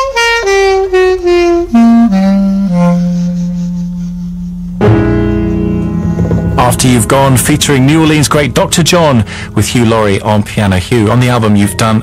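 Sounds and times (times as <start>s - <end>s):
jazz recording: 0.0s - 12.0s.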